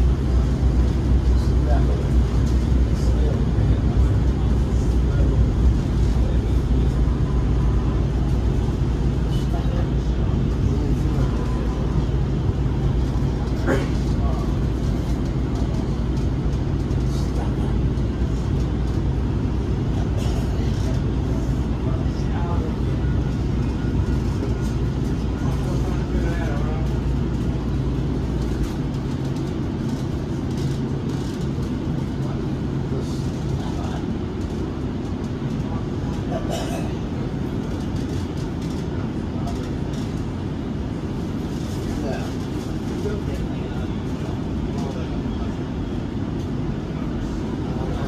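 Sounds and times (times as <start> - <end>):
train ride rumble and hum: 0.0 - 48.0.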